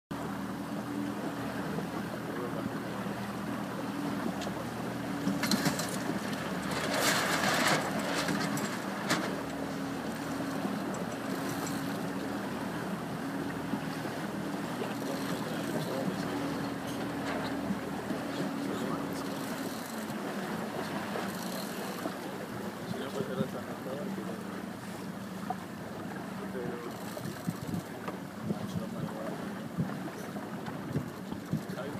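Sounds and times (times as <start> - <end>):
outboard motor running: 0.1 - 31.9
water splashing: 0.2 - 31.9.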